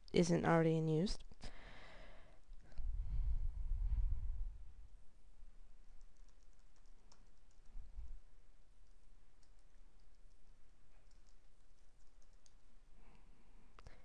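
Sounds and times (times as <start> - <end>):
typing on computer keyboard: 5.9 - 7.8, 8.8 - 12.6.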